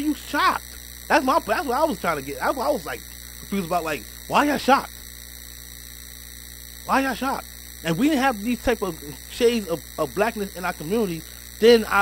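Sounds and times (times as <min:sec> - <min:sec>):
person speaking: 0:00.0 - 0:04.9, 0:06.9 - 0:12.0
electrical mains hum: 0:00.0 - 0:12.0
faint recording hiss: 0:00.0 - 0:12.0.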